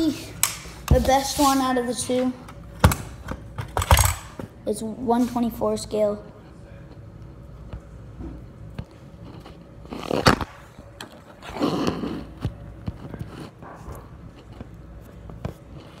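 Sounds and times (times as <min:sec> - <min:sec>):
handling clicks and knocks: 0:02.8 - 0:04.5.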